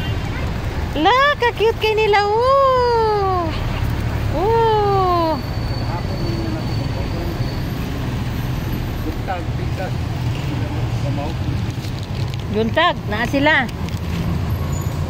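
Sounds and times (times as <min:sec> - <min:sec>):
street traffic rumble: 0:00.0 - 0:15.0.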